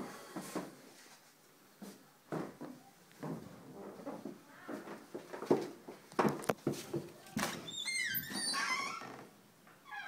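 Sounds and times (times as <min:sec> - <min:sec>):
door squeaking: 0:07.4 - 0:10.0.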